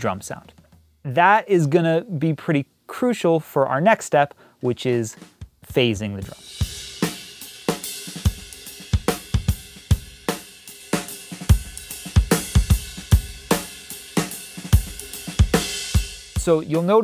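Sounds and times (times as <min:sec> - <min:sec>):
drum kit playing a groove: 0:00.0 - 0:01.7, 0:04.6 - 0:17.0.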